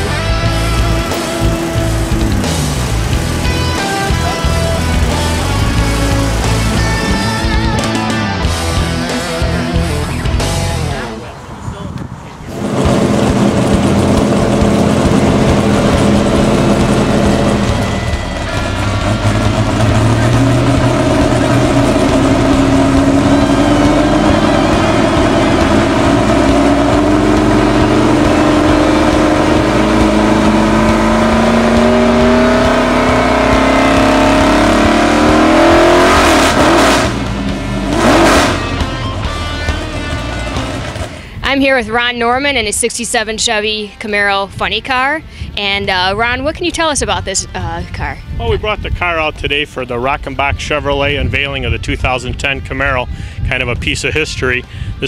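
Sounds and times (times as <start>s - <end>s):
engine throttle blips: 0.0s - 11.4s, 12.2s - 55.0s
car engine revving: 0.0s - 11.6s, 12.4s - 42.1s.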